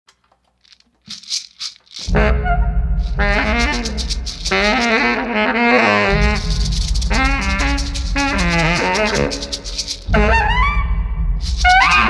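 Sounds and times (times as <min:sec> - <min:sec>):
shaker rattling in rhythm: 0:00.6 - 0:02.2, 0:03.0 - 0:05.4, 0:06.1 - 0:10.3, 0:11.4 - 0:12.0.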